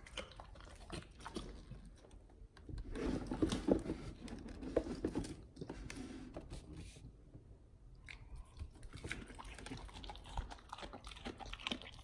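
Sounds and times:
dog licking and smacking lips: 8.0 - 12.0.

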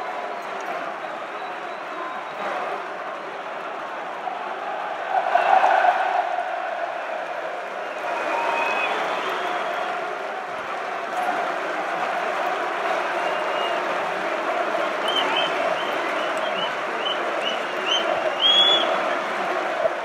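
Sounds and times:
crowd chattering and calling: 0.0 - 20.0
scattered applause: 0.0 - 20.0.

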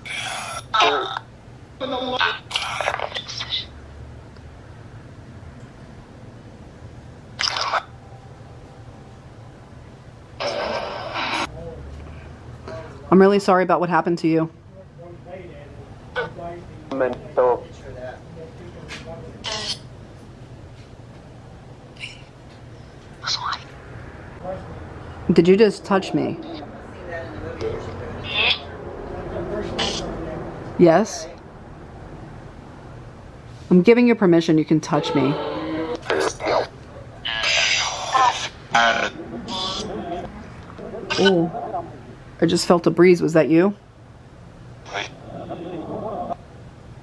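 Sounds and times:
low room hum: 0.0 - 47.0
radio static bursts: 35.1 - 39.9.

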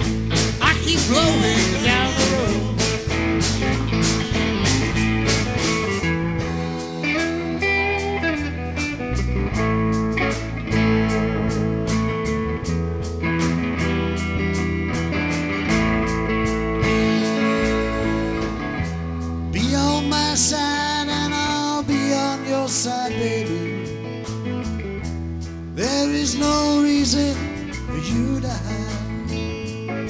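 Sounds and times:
bass guitar: 0.0 - 30.0
electric guitars: 0.0 - 30.0.

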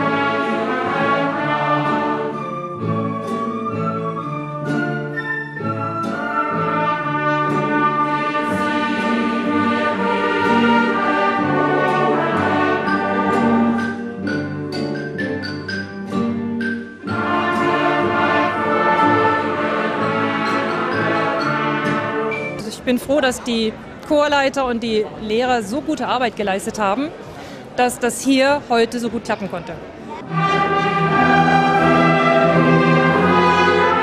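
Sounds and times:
orchestra playing: 0.0 - 22.9, 30.2 - 34.0
choir singing: 7.9 - 14.0, 17.1 - 22.5, 30.3 - 34.0.

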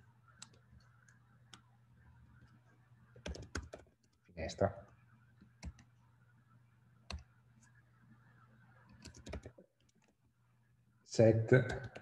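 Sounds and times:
faint low hum: 0.0 - 12.0
computer keyboard typing: 0.4 - 1.6, 3.2 - 4.2, 5.5 - 5.9, 7.1 - 7.3, 8.9 - 10.1, 11.7 - 12.0.

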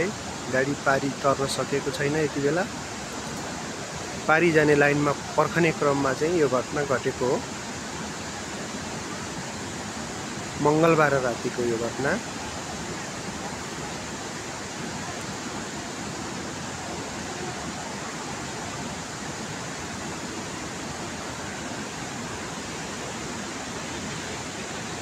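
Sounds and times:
steady rushing noise: 0.0 - 25.0.

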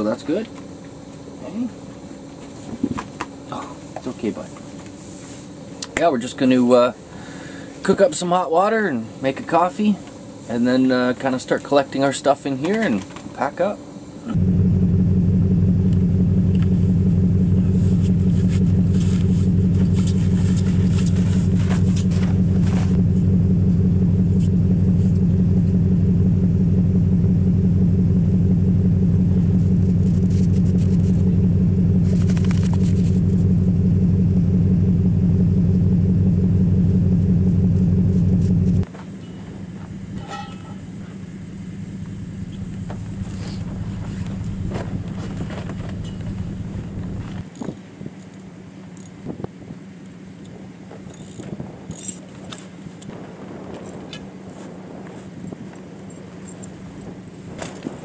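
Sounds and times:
vehicle engine idling: 0.0 - 58.0
wind: 0.0 - 58.0
low hum: 13.8 - 47.5.

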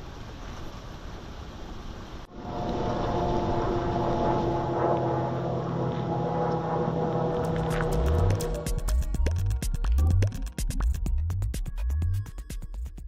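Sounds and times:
river water rushing: 0.0 - 8.9
airplane flying overhead: 2.3 - 9.4.

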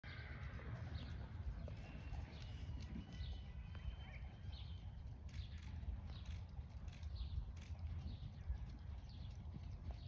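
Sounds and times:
horse hoofbeats on sand: 0.1 - 10.0.

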